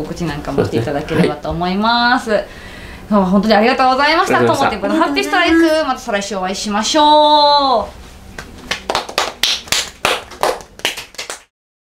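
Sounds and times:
people clapping: 0:08.6 - 0:11.5.

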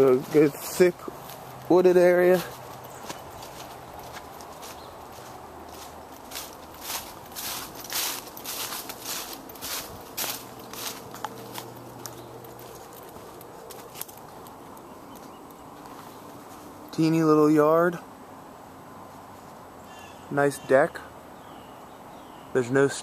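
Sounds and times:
footsteps on dry leaves: 0:00.0 - 0:16.9
steady low hum: 0:00.0 - 0:19.9.

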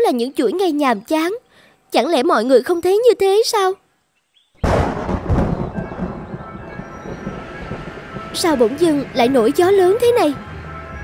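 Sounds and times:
strong gust of wind: 0:04.6 - 0:10.4
faint music: 0:05.0 - 0:11.0.

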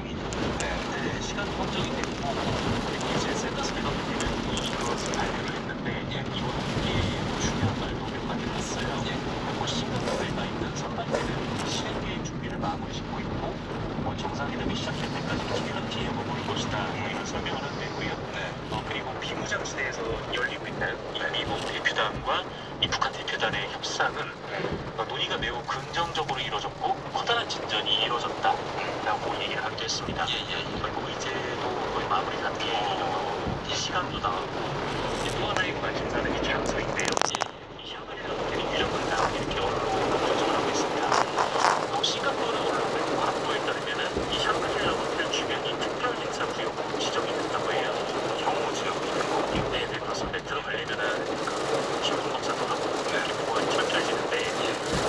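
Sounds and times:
rain noise: 0:00.0 - 0:55.0
road noise: 0:00.0 - 0:55.0
voices talking: 0:00.0 - 0:55.0.

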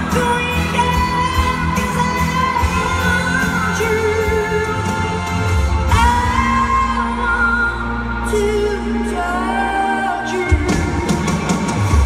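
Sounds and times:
woman singing a ballad: 0:00.0 - 0:11.1
live band playing: 0:00.0 - 0:12.0.

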